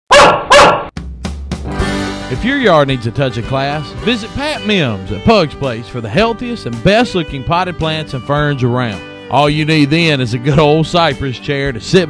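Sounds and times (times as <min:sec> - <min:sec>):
dog barking: 0:00.1 - 0:00.9
background music: 0:01.0 - 0:12.0.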